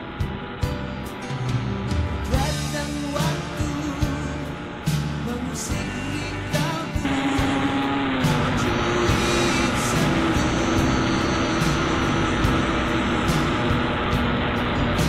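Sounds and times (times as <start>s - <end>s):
background music: 0.0s - 15.0s
motorcycle engine running: 0.0s - 15.0s.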